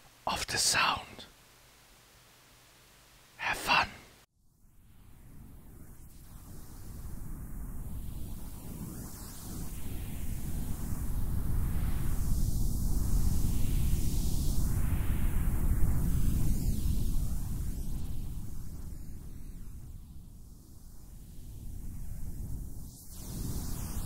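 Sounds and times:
hiss sweeping up and down: 5.9 - 24.0.

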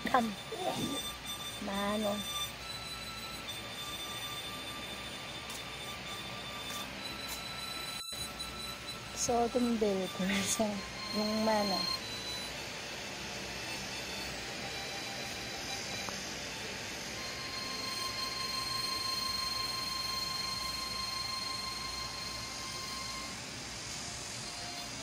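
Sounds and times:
faint high whine: 0.0 - 25.0.

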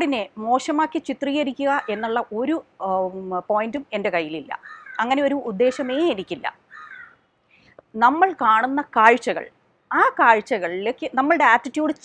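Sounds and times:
voice: 0.0 - 6.6, 7.9 - 12.0
crow cawing: 1.8 - 2.1, 4.6 - 5.1, 6.7 - 7.2.

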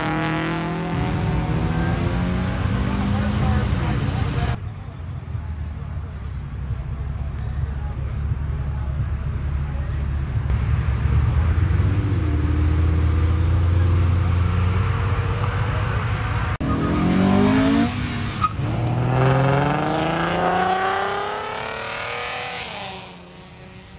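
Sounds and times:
sports car engines accelerating: 0.0 - 23.9.

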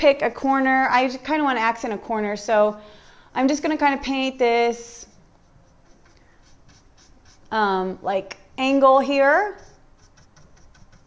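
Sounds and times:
scratchy paintbrush strokes on wood: 4.1 - 7.6, 9.0 - 11.0.

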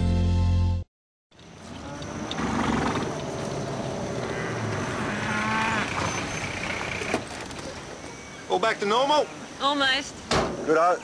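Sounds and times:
cattle mooing: 1.8 - 6.4.

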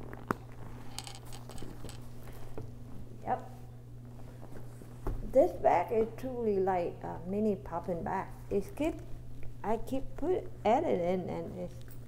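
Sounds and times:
leather and chain strap handling: 0.1 - 2.1.

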